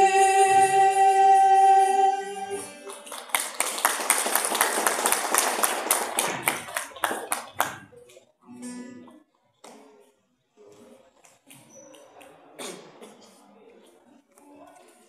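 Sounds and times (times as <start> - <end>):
audience applauding: 2.6 - 7.9.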